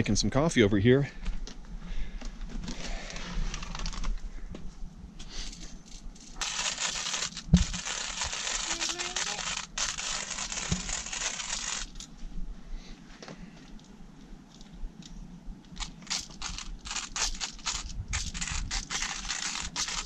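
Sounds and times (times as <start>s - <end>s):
hand coffee grinder grinding beans: 6.2s - 12.1s, 15.7s - 20.0s.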